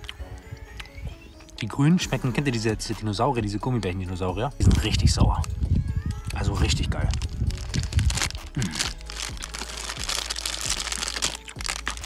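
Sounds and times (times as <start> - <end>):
plastic bag crinkling: 6.2 - 12.0.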